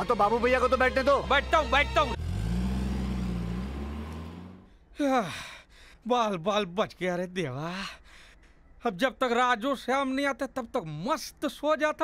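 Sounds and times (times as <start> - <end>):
engine running driving away: 2.1 - 4.7.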